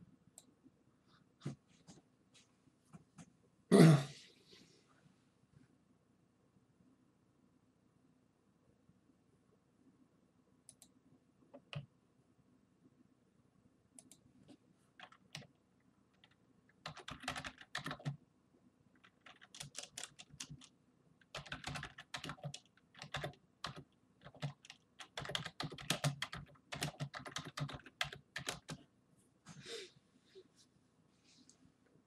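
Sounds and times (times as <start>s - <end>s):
typing on computer keyboard: 15.0s - 15.5s, 16.2s - 18.2s, 19.0s - 28.8s.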